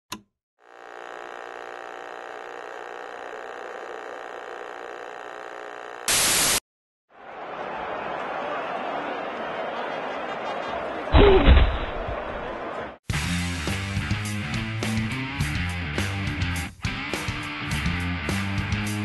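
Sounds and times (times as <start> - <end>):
crowd murmur: 7.2 - 13.0.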